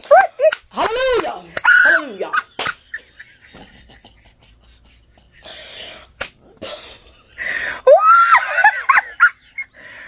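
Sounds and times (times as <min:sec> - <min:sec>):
woman shrieking with laughter: 0:01.6 - 0:02.5, 0:07.8 - 0:09.3.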